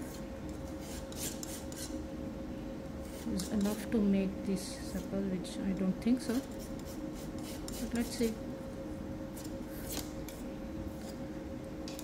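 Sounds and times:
palette knife scraping paste: 0:06.6 - 0:08.3.

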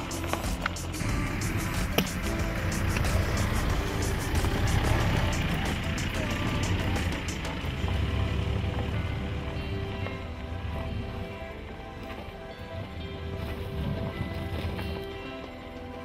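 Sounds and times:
background music: 0:00.0 - 0:16.0
car engine rumbling: 0:00.0 - 0:16.0
tyres on gravel: 0:00.0 - 0:16.0.

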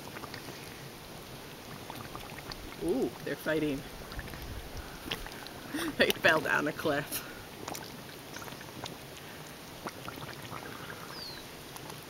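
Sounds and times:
tar pool bubbling: 0:00.0 - 0:12.0.

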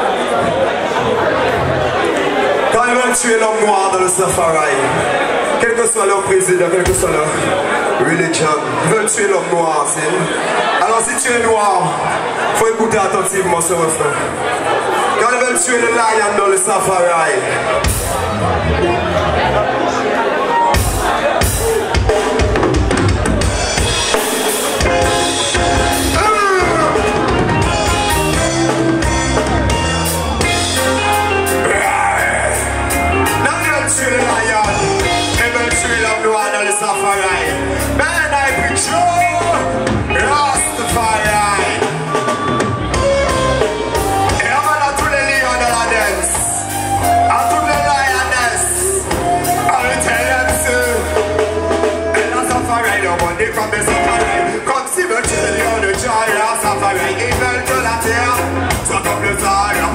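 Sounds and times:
live reggae band: 0:00.0 - 0:59.9.

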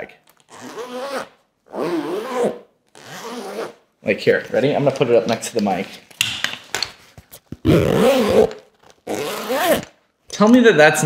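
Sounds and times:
zipper opening and closing: 0:00.4 - 0:03.8, 0:07.6 - 0:10.0.

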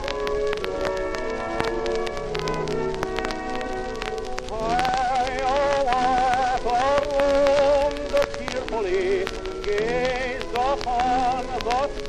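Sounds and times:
old ballad recording: 0:00.0 - 0:12.0
record surface crackle and clicks: 0:00.0 - 0:12.0.

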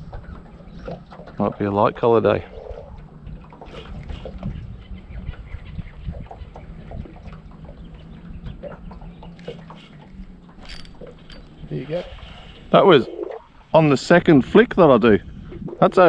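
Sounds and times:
wind rumbling on microphone: 0:02.4 - 0:16.0.

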